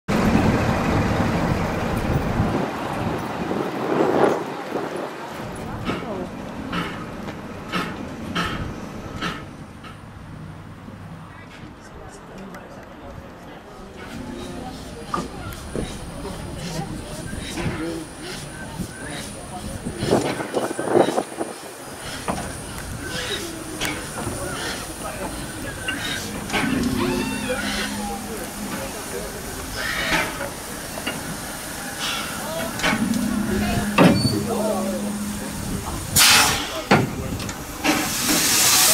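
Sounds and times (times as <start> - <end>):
steam locomotive running slowly: 0.1 - 38.9
voices in background: 11.2 - 38.9
vehicle engine rumbling: 14.0 - 38.4.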